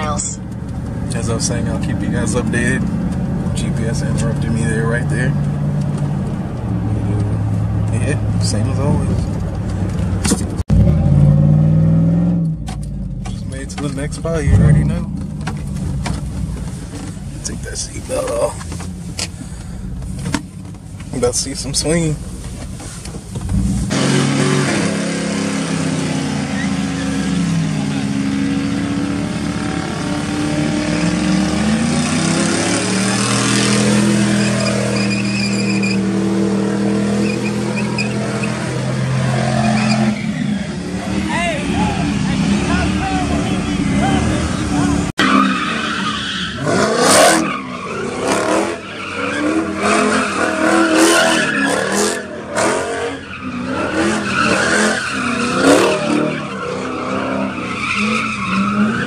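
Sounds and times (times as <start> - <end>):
car engine revving: 0.0 - 20.4, 23.4 - 59.0
tyres squealing: 30.8 - 59.0.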